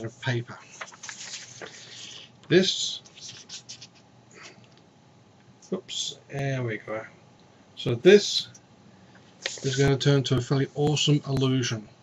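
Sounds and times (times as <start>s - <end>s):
paper rustling: 0.6s - 2.3s, 3.0s - 4.1s, 9.4s - 9.9s.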